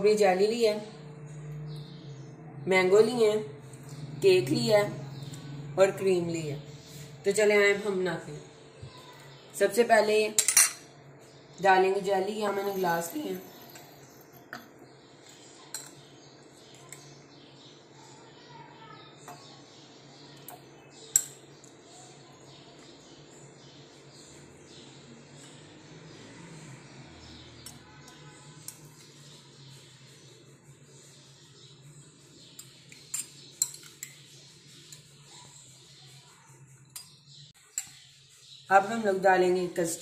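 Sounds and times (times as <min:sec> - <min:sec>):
steady low hum: 0:00.0 - 0:16.4
metal spoon clinking on glass: 0:10.4 - 0:10.9, 0:32.6 - 0:34.2.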